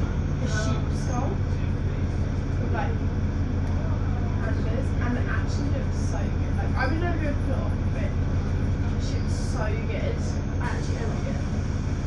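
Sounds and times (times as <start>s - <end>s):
bus engine running: 0.0s - 12.0s.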